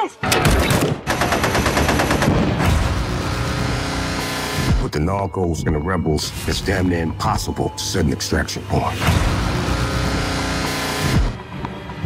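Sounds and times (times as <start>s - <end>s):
automatic gunfire: 0.6s - 2.6s.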